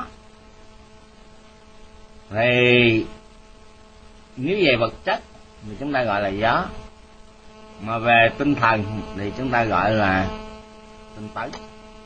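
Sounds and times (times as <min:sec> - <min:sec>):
electrical mains hum: 0:00.0 - 0:12.0
faint hiss: 0:00.0 - 0:12.0.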